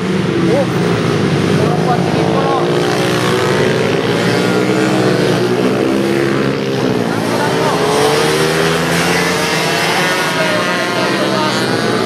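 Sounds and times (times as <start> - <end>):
mini motorcycle engines racing: 0.0 - 12.0.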